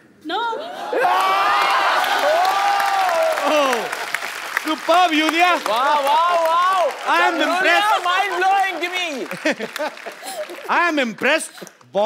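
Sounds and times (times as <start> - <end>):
audience cheering and whooping: 0.8 - 10.7
audience clapping: 1.0 - 11.9.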